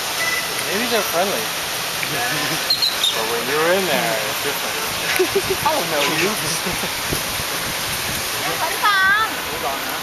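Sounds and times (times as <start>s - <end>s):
water cascade splashing into pond: 0.0s - 10.0s.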